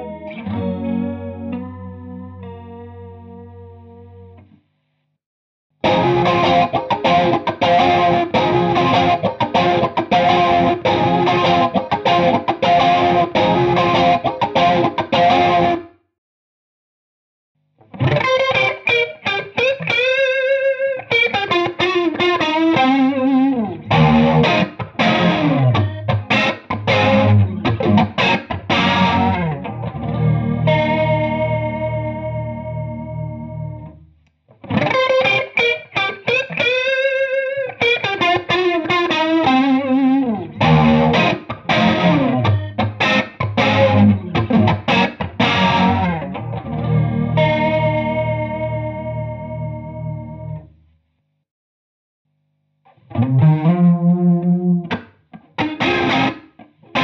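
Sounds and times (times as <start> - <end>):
overdriven chorused electric guitar: 0.0 - 3.2, 5.8 - 15.9, 18.0 - 34.0, 34.6 - 50.6, 53.0 - 57.0.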